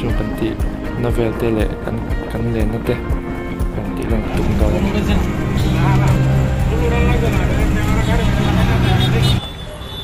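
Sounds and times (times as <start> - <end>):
man talking: 3.7 - 9.4.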